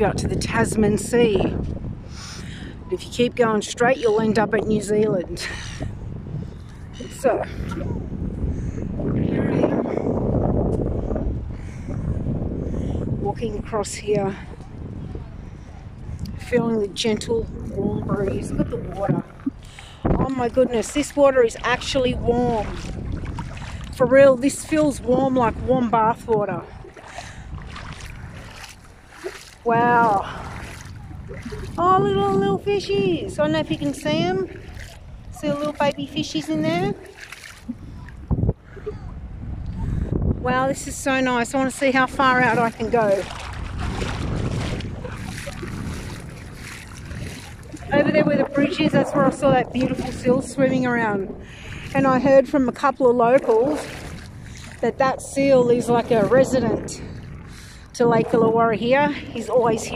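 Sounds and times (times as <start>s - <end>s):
wind buffeting microphone: 0.0s - 59.9s
feet splashing in shallow water: 0.7s - 59.9s.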